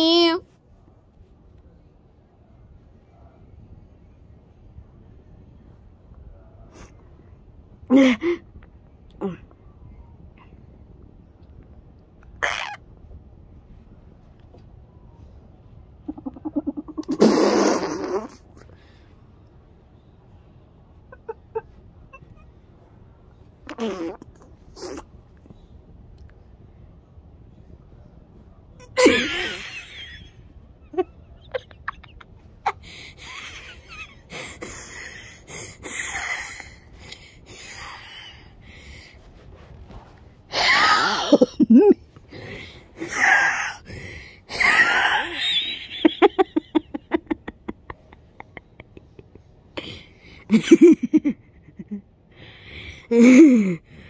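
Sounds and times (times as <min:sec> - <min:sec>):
faint snickers: 0:16.1 - 0:18.7
child wheezing with laughter: 0:40.5 - 0:41.7.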